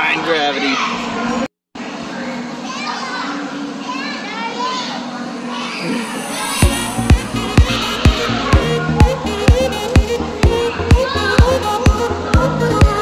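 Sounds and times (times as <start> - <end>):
crowd hum in echoing hall: 0.7 - 13.0
children shouting: 2.6 - 13.0
steady thumping beat: 6.6 - 13.0.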